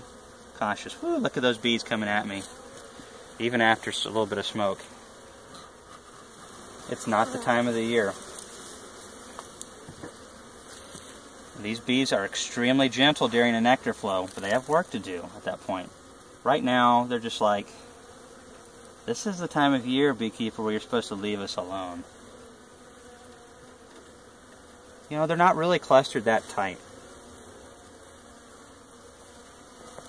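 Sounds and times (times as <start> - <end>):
honeybees buzzing: 0.0 - 30.0.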